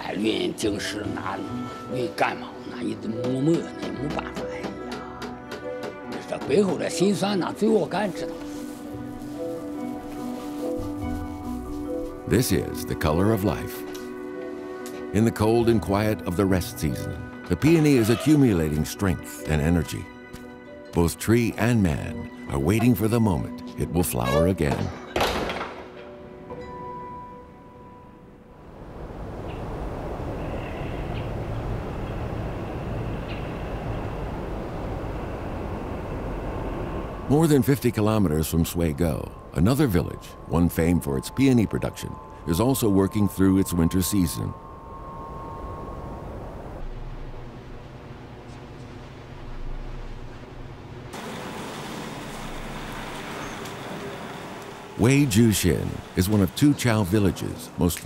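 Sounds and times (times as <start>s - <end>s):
music: 0.0s - 28.6s, 37.2s - 46.8s, 54.8s - 58.0s
low hum: 28.4s - 51.4s
low rumbling background noise: 28.4s - 58.0s.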